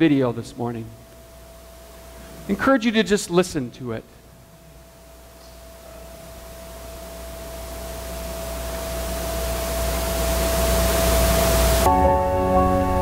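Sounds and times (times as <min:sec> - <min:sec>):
noise riser with held tone: 0:07.8 - 0:13.0
soundtrack music over loudspeakers: 0:11.7 - 0:13.0.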